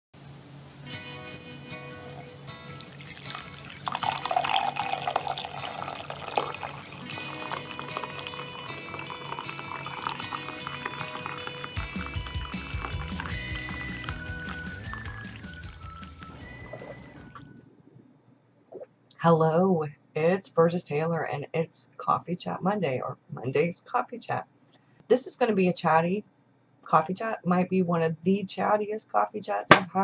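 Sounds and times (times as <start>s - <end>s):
background music: 0.8s - 17.6s
coffee pouring into mug: 2.1s - 17.5s.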